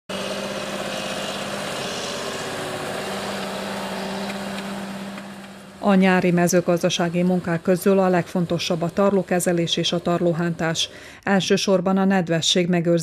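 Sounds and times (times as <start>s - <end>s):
tractor diesel engine droning: 0.1s - 11.2s.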